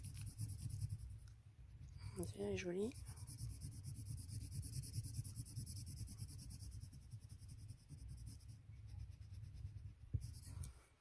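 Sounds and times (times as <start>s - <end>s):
pencil shading on paper: 0.0s - 10.6s.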